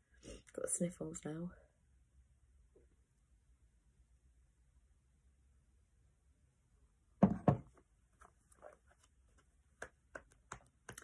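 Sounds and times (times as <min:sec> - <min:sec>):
loud knocks: 0:07.2 - 0:07.7
cards being handled: 0:08.2 - 0:11.0.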